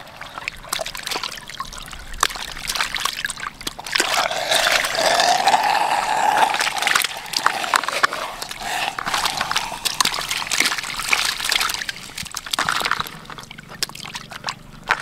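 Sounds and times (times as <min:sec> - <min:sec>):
water and fish splashing into basin: 0:00.0 - 0:15.0.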